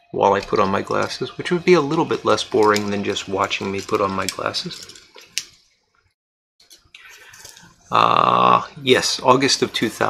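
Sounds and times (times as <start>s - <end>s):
metal tin handling noise: 0.5s - 5.6s, 6.6s - 7.7s
light rustling with ticks: 0.9s - 6.0s.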